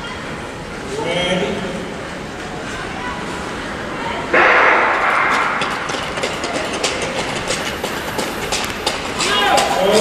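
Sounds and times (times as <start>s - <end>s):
starting pistol bang: 4.4s - 5.8s.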